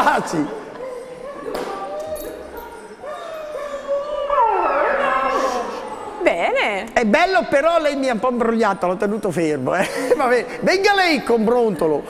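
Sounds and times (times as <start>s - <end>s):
dog whining: 0.5s - 6.8s.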